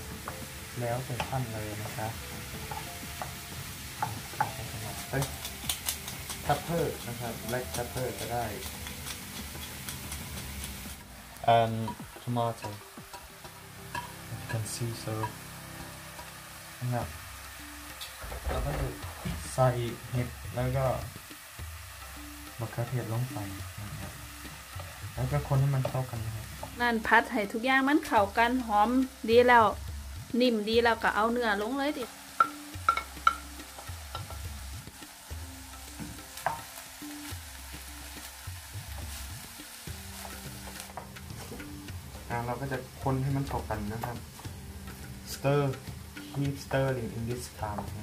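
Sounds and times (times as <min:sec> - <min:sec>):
vegetables sizzling in frying pan: 0:00.0 - 0:48.0.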